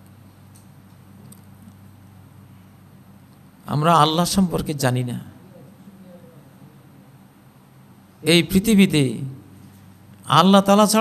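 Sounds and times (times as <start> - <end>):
low room hum: 0.0 - 11.0
man speaking: 8.2 - 9.5, 10.3 - 11.0.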